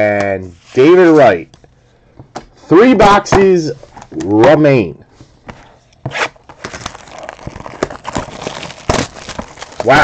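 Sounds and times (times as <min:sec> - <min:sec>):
cardboard box rustling and crinkling: 0:06.4 - 0:10.0.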